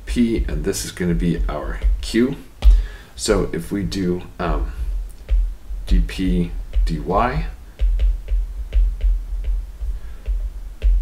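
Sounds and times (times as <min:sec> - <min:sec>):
stylus tapping on tablet: 0:01.4 - 0:02.9, 0:04.4 - 0:11.0.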